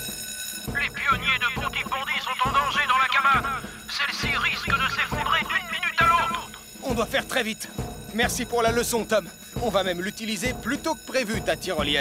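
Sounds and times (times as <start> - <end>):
fast music: 0.0 - 12.0
twin-gong alarm bell ringing: 0.0 - 12.0.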